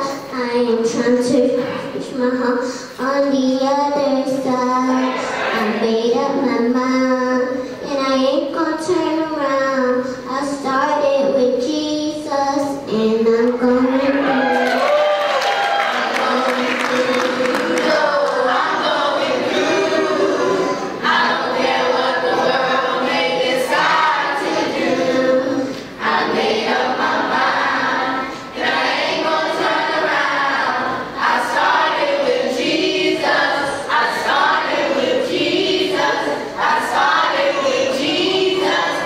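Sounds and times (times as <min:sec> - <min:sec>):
children's choir singing a cappella: 0:00.0 - 0:39.0.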